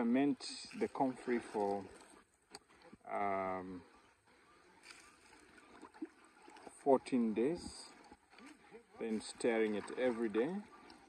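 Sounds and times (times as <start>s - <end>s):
small splash: 0.5s - 3.0s, 4.7s - 6.8s, 7.6s - 11.0s
stick sloshing liquid in drum: 0.6s - 2.2s, 4.8s - 11.0s.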